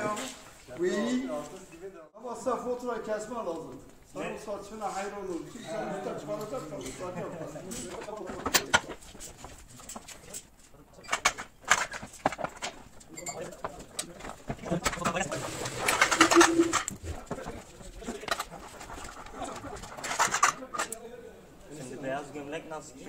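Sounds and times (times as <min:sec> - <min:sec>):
curtain rustling: 0:14.8 - 0:17.8.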